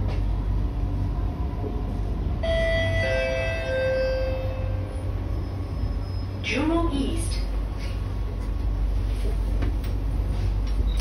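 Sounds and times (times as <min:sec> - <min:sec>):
train rumbling in motion: 0:00.0 - 0:11.0.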